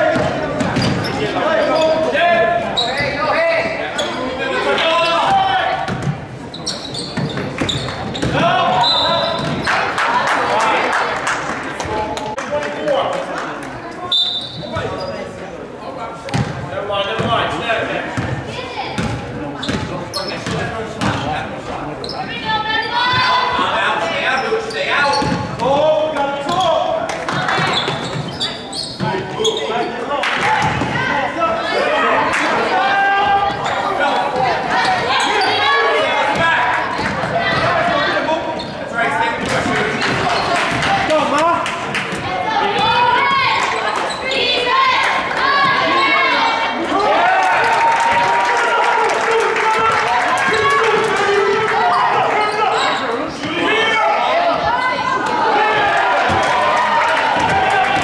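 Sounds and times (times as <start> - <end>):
people shouting in gym: 0.0 - 5.9, 8.2 - 10.8, 22.2 - 28.0, 30.2 - 38.6, 42.2 - 58.0.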